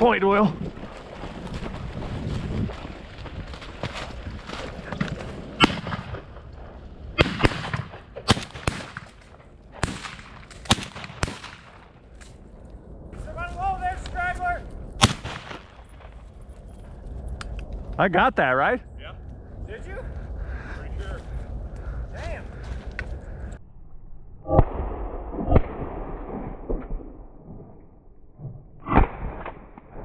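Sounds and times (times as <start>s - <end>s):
shotgun shots: 5.6s - 6.4s, 7.2s - 12.0s, 15.0s - 16.1s.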